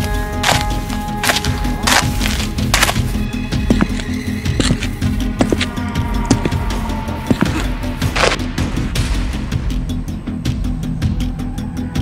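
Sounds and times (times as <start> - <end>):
background music: 0.0 - 12.0
sharp crackling bursts: 0.4 - 5.8.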